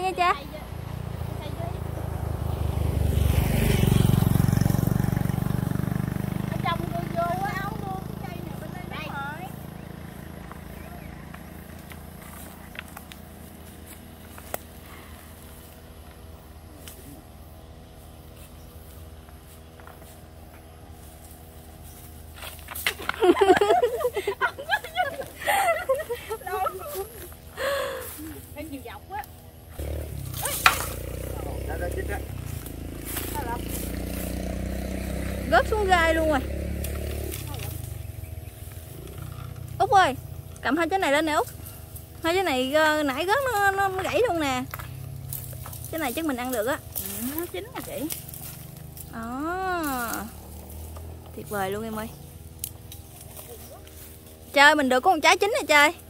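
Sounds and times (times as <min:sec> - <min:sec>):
voices: 0:00.0 - 0:21.0, 0:22.8 - 0:56.0
low vehicle rumble: 0:00.0 - 0:56.0
vehicle passing on road: 0:00.0 - 0:56.0.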